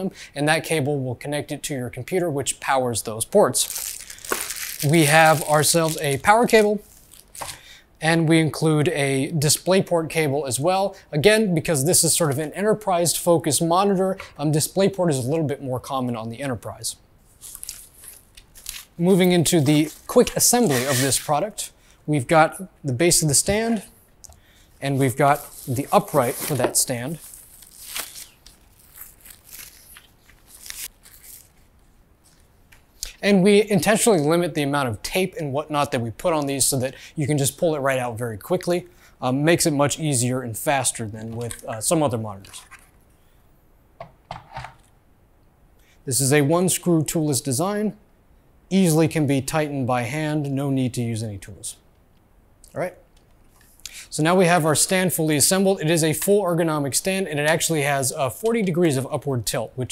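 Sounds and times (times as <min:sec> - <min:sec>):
plastic packaging crinkling: 0:03.6 - 0:07.6, 0:17.3 - 0:21.4, 0:24.9 - 0:32.5.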